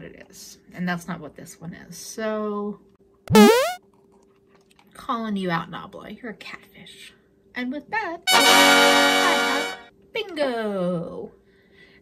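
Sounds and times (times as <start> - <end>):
rising pitch sweep: 3.3 - 3.8.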